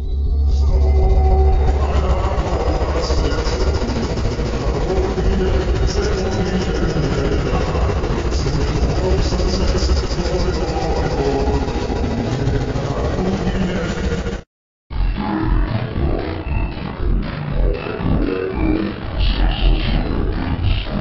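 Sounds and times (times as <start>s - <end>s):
warped music and voice: 0.0s - 21.0s.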